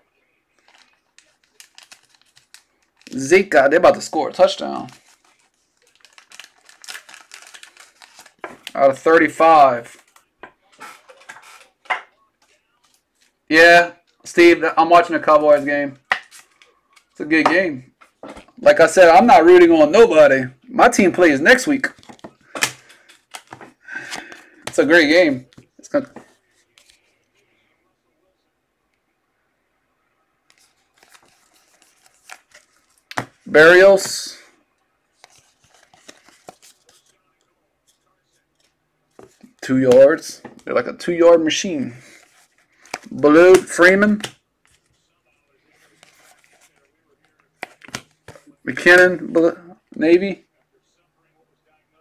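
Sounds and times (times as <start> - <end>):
trading cards clicking and scraping: 9.9 - 13.3, 21.9 - 27.1, 30.5 - 33.4, 35.2 - 37.2, 42.2 - 45.0, 45.7 - 48.5.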